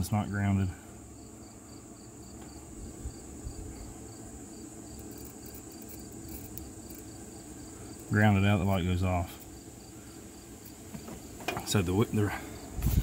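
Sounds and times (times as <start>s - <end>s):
insect chirping: 0.0s - 13.0s
high-pitched hiss: 0.1s - 13.0s.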